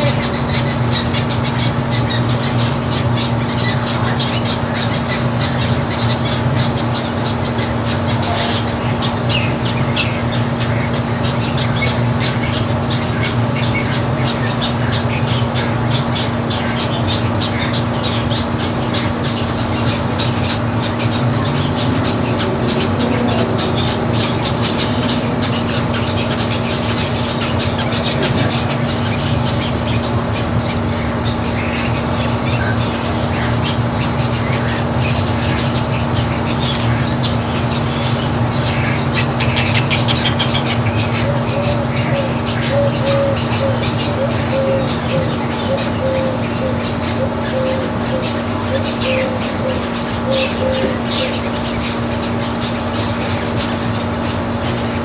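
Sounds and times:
steady low hum: 0.0s - 55.0s
wading birds squawking: 0.0s - 55.0s.

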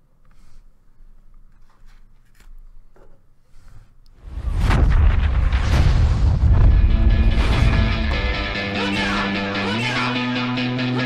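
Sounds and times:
deep cinematic booms: 4.2s - 9.1s
heavy rumbling bass: 4.2s - 9.7s
hard percussive hits: 4.4s - 9.1s.

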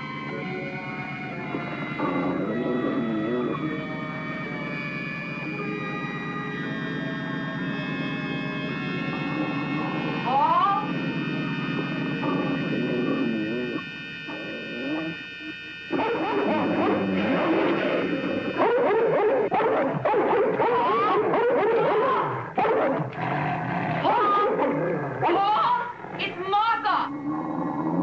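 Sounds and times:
electronic music tones: 0.0s - 23.1s.

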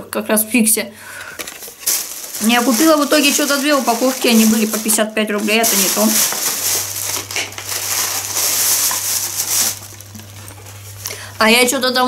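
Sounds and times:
plastic packaging crinkling: 1.2s - 11.1s.

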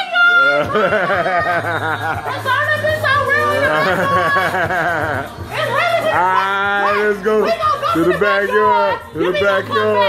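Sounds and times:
woman shouting a chant: 0.0s - 0.9s, 2.2s - 4.6s, 5.5s - 10.0s.

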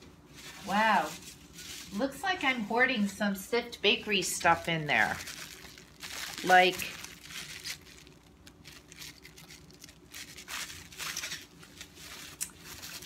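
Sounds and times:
plastic bag crinkling: 4.0s - 13.0s.

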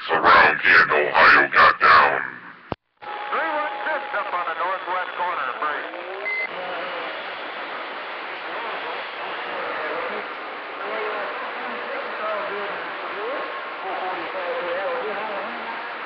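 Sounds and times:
indistinct voices: 0.0s - 7.2s.

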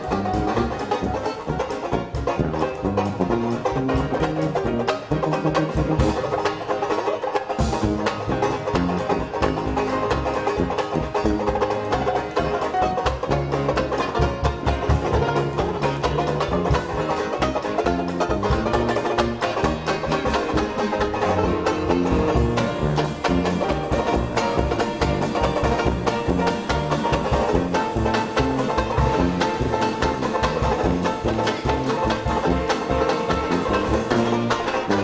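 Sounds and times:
banjo strumming fast chords: 0.0s - 35.0s
drums: 0.0s - 35.0s
tuba bass line: 0.0s - 35.0s.

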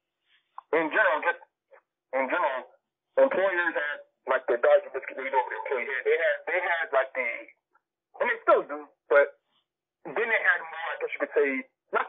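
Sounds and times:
people talking: 0.7s - 1.4s, 2.2s - 7.6s, 8.2s - 9.4s, 10.1s - 12.0s.

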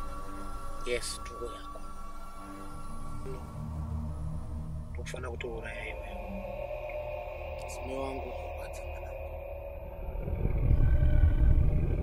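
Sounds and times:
loud low rumble: 8.4s - 12.0s.

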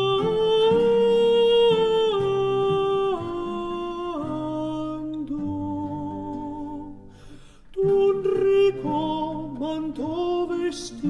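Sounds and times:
countertenor singing long notes: 0.0s - 7.1s, 7.7s - 11.0s
low instrumental accompaniment: 0.0s - 7.2s.

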